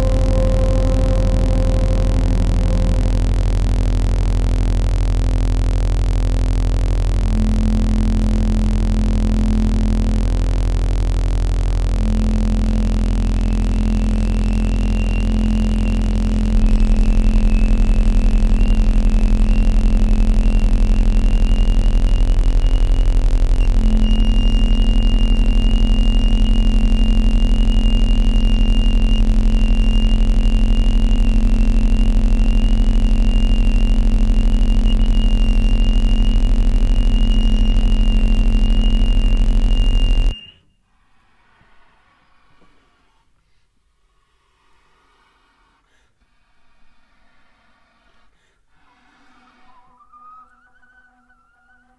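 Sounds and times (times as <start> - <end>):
bass flute cello and clarinet: 0.0 - 4.0
thin high tone: 0.0 - 4.0
loud electronic noise: 0.0 - 40.4
low sine tone: 0.0 - 40.8.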